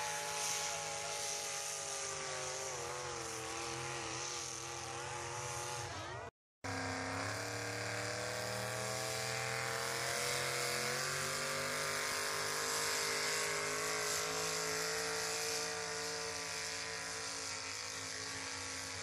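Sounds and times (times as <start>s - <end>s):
truck engine at high revs: 0.0s - 19.0s.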